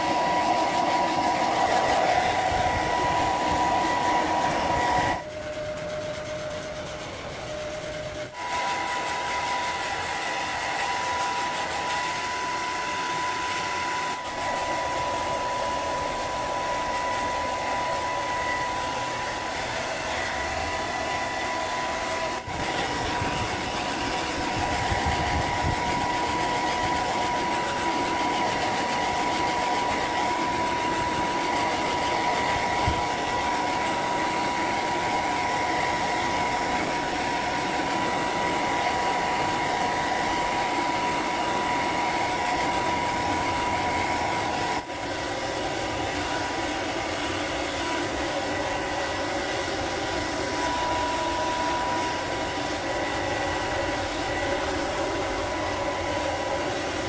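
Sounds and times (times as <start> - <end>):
hair dryer blowing: 0.0 - 57.0.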